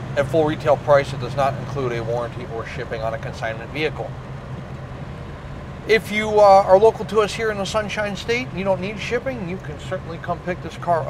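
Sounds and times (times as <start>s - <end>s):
car engine cruising: 0.0s - 11.0s
road noise: 0.0s - 11.0s
man talking: 0.2s - 4.1s, 5.9s - 11.0s.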